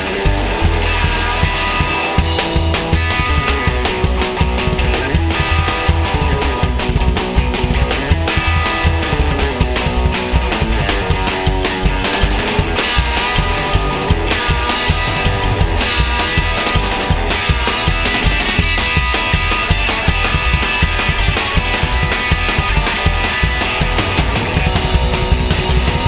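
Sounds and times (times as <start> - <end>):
driving drum kit: 0.0 - 26.0
electric guitar lead: 0.0 - 26.0
upright bass: 0.0 - 26.0.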